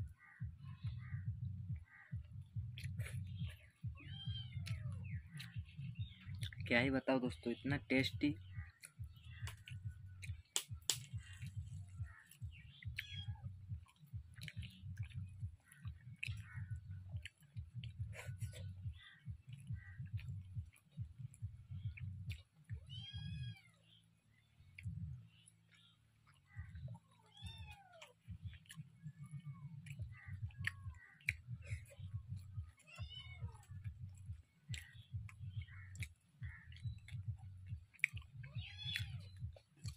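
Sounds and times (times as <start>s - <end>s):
bird chirping: 0.0s - 39.9s
fingers picking at food: 2.7s - 6.7s, 8.3s - 23.7s, 24.6s - 39.9s
cat meowing: 3.4s - 5.0s, 12.9s - 13.5s, 22.7s - 23.8s, 26.7s - 28.6s, 32.6s - 34.1s, 38.3s - 39.5s.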